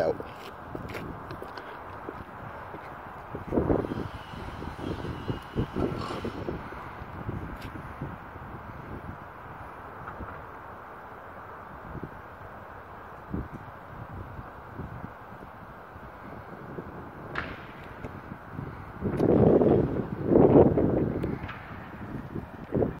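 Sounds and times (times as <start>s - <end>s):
wind on microphone: 0.0s - 23.0s
outdoor hiss: 3.5s - 16.4s.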